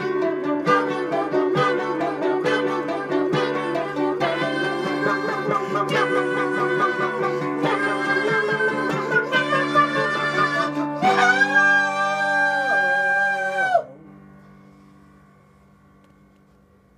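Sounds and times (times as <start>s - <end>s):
mandolin picking: 0.0s - 13.8s
man singing: 1.1s - 13.9s.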